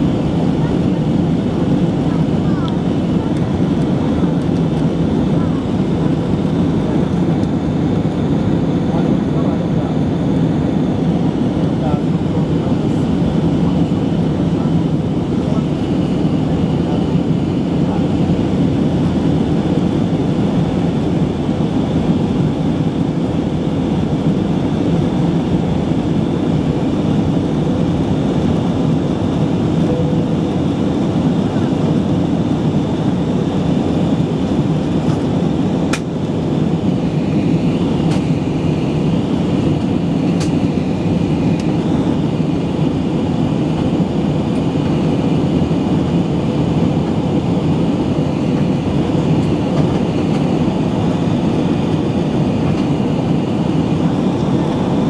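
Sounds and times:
airliner cabin noise: 0.0s - 55.0s.

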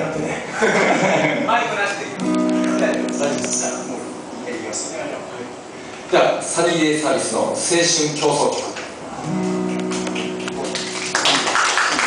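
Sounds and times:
percussion: 2.2s - 3.8s
strummed acoustic guitar: 2.2s - 4.9s, 9.2s - 11.2s
held note: 2.2s - 5.8s.

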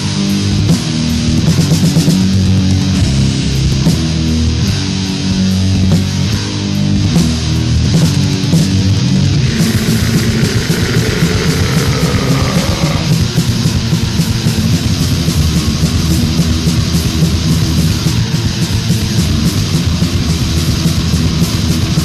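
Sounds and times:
distorted electric guitars: 0.0s - 22.0s
steady drumming: 9.4s - 22.0s.

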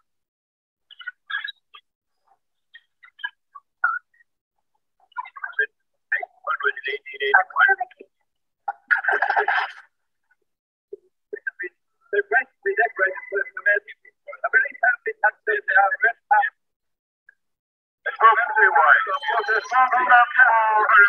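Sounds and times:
telephone-like archival radio voices: 5.0s - 9.9s, 11.0s - 16.8s, 18.0s - 21.0s.

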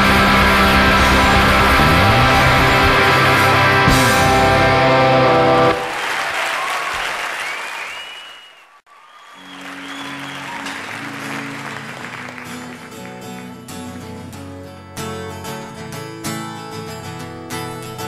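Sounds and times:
full-band rock song: 0.0s - 5.8s
low held instrument notes: 0.0s - 5.8s
audience applauding: 0.0s - 13.9s
audience whistling: 0.2s - 13.4s.

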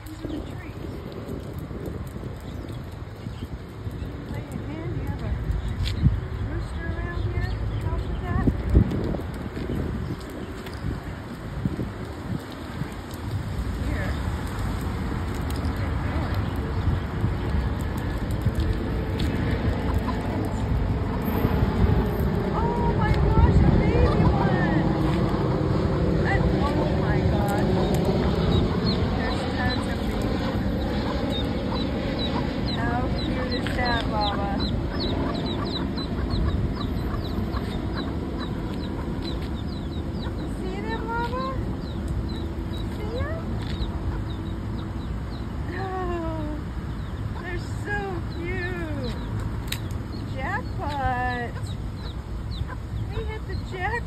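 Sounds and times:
low rumble of road traffic: 0.0s - 54.0s
baby chicks peeping: 15.4s - 21.2s, 26.3s - 54.0s.

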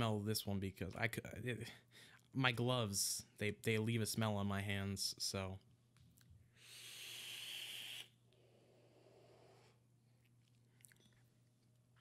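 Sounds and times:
hissing inhale through vape: 6.6s - 9.8s.

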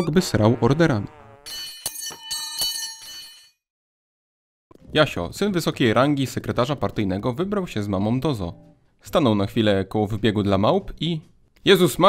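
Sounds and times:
metallic bell-like clinking: 1.5s - 3.6s.

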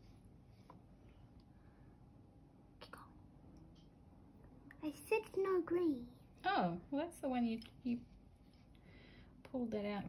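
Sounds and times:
faint whisper: 2.8s - 3.3s.

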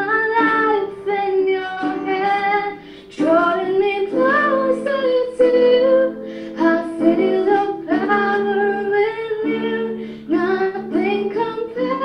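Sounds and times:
woman singing worship song: 0.0s - 12.0s.

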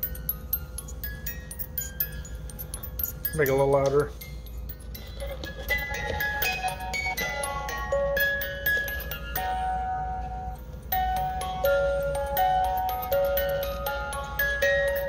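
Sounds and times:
music box melody: 0.0s - 15.0s.

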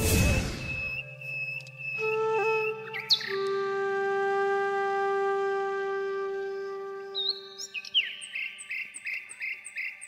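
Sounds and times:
held wind instrument note: 2.0s - 7.6s.

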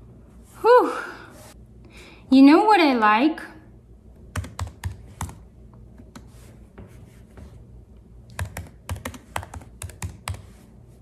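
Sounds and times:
typing on computer keyboard: 4.3s - 5.4s, 8.3s - 10.5s.

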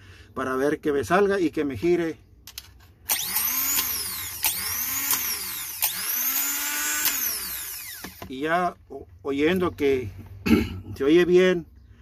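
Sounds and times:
starter motor whining: 3.1s - 8.2s.

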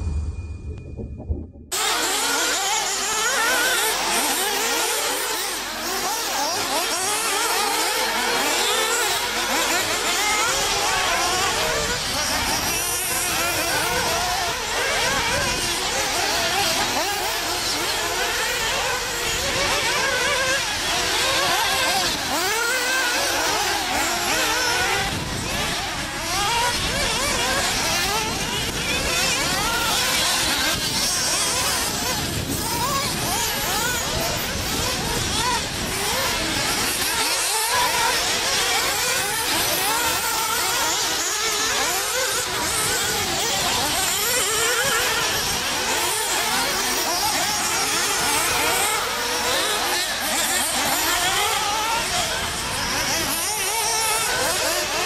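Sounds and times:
toy car motors whining: 1.8s - 55.0s.

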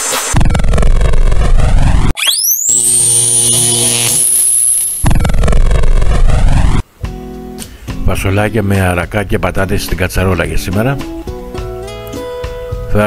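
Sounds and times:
electronic intro music: 0.0s - 6.8s
loud sweeping noise: 0.0s - 6.8s
fast rising whoosh: 0.3s - 6.8s.

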